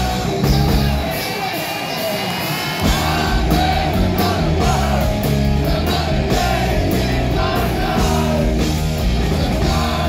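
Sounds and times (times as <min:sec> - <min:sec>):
crowd noise: 0:00.0 - 0:10.0
hard rock band playing live: 0:00.0 - 0:10.0.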